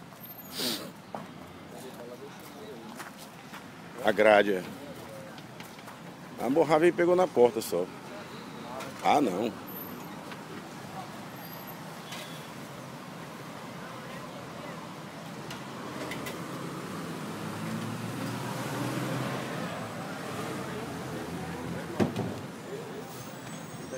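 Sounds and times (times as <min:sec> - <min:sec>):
road traffic hum: 0:00.0 - 0:23.9
vehicle passing: 0:15.6 - 0:23.9.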